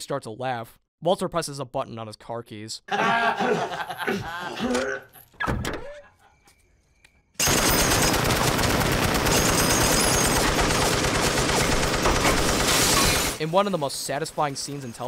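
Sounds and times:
men laughing: 2.9 - 5.2, 5.8 - 6.6
machine gun firing: 7.4 - 13.4.

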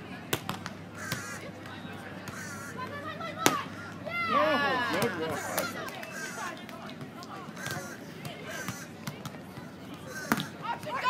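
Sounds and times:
people shouting and cheering: 1.3 - 9.0, 10.0 - 11.0
volleyball being hit: 3.4 - 3.7.

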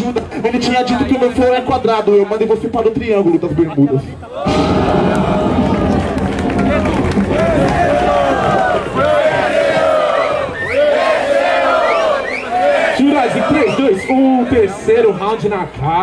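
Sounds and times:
crowd cheering and shouting: 4.3 - 14.9.

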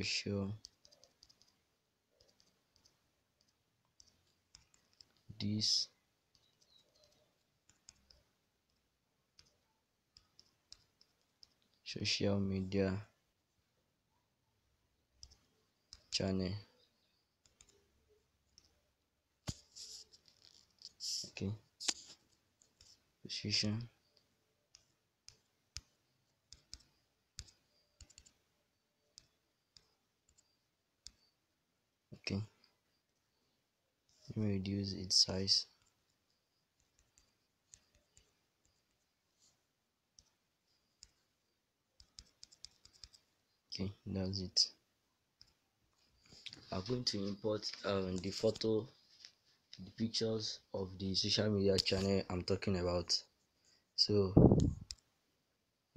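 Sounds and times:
person speaking: 0.0 - 1.6, 2.2 - 13.2, 15.2 - 18.9, 19.5 - 28.4, 32.1 - 32.6, 34.1 - 35.9, 42.0 - 45.6, 46.2 - 53.4, 54.0 - 55.0.

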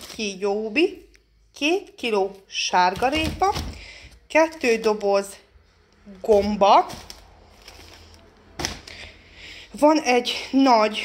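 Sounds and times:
groceries and phone handled on table: 2.6 - 9.2.

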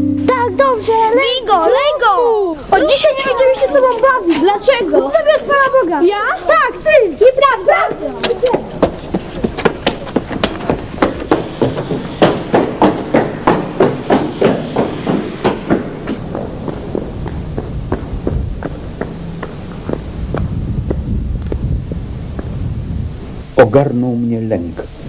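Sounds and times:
low hum: 0.0 - 1.9, 9.4 - 23.5
running footsteps on stone: 7.4 - 22.6.

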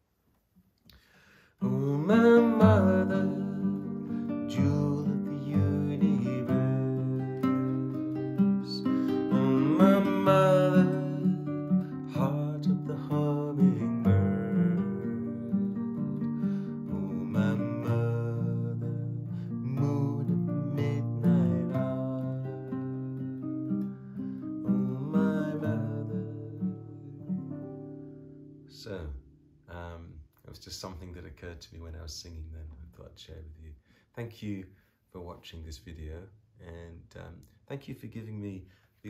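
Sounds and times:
man singing: 1.6 - 23.4, 24.6 - 27.4, 28.8 - 30.2
strummed acoustic guitar: 1.6 - 29.3.

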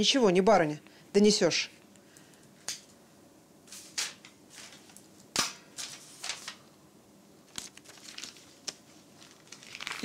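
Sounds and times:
paper rustling: 3.7 - 6.7, 7.4 - 10.0
paper snap: 3.9 - 6.6, 7.5 - 10.0.

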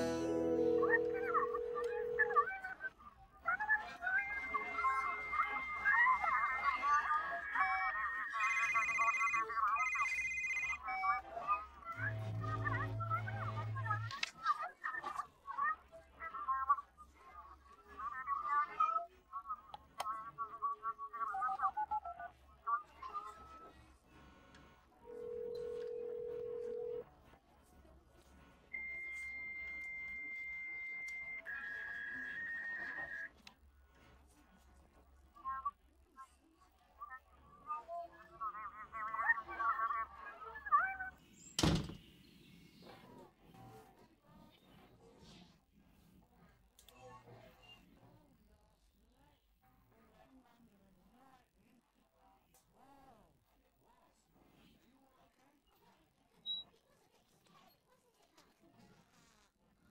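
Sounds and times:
telephone ringing: 0.0 - 2.7, 4.4 - 11.4, 25.1 - 27.0.

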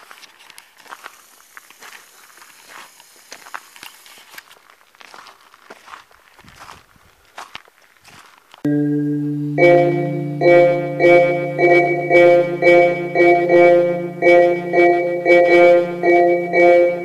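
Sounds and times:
marimba music: 8.7 - 17.0.

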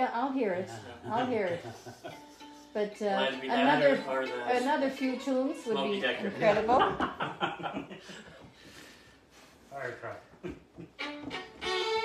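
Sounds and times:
fiddles playing a tune: 0.9 - 7.0, 10.9 - 12.0.

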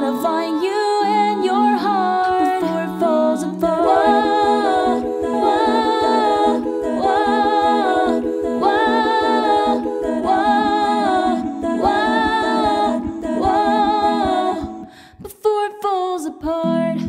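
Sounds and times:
woman humming chords: 1.0 - 15.0
low vocal bass notes: 3.5 - 14.9.

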